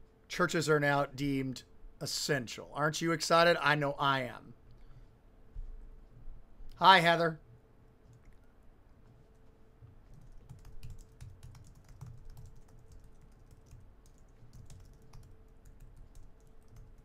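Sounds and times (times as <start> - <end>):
faint keyboard typing: 8.0 - 17.0.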